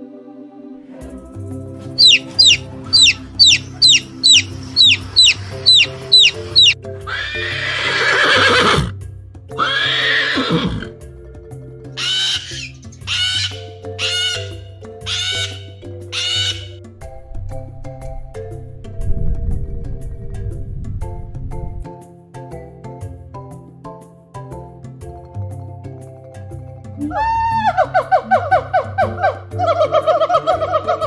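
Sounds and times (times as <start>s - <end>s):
soft background music: 0.0s - 31.0s
chick peeping: 2.0s - 6.8s.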